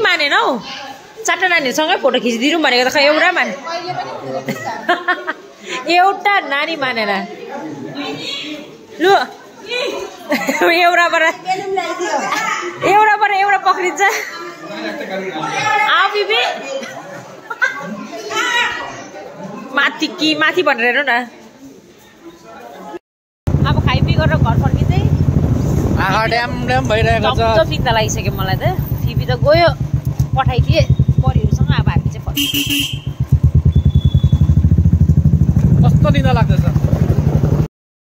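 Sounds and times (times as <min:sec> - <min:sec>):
motorcycle engine running: 0:23.5 - 0:37.7
people talking: 0:23.6 - 0:25.2, 0:25.9 - 0:32.5, 0:35.8 - 0:36.8
horn honk: 0:32.3 - 0:34.6.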